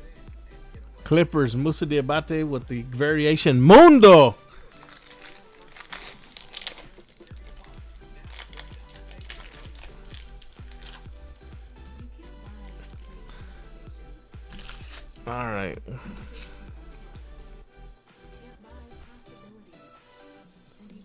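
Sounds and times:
quiet background music: 0:00.0 - 0:21.0
plastic wrapper crinkling and tearing: 0:04.5 - 0:11.5, 0:14.5 - 0:15.2.

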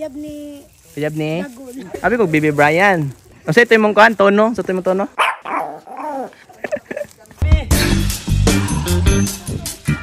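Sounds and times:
dog barking: 0:05.2 - 0:06.1.

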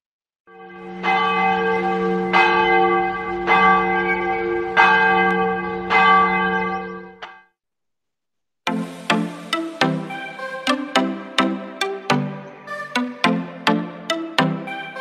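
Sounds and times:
large bell ringing: 0:00.5 - 0:07.2.

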